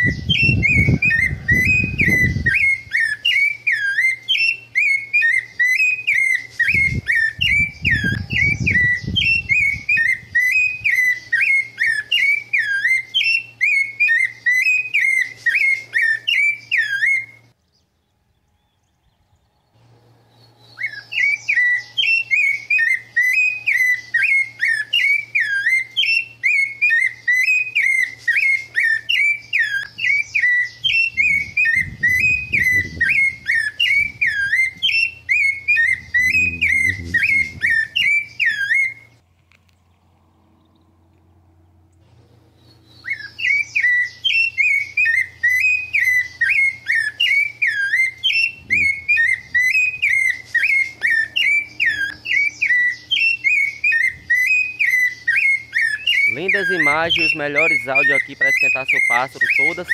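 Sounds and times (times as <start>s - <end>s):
thrush singing: 35.0s - 38.3s
low rumble: 39.7s - 42.8s.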